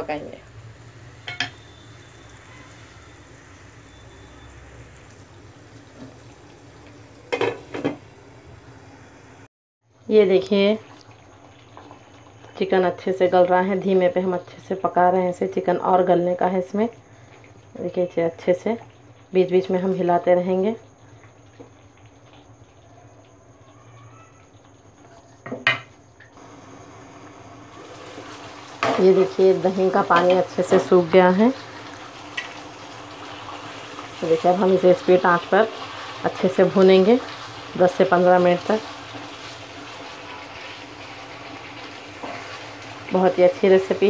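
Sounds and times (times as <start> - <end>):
food sizzling and bubbling: 0.0 - 44.0.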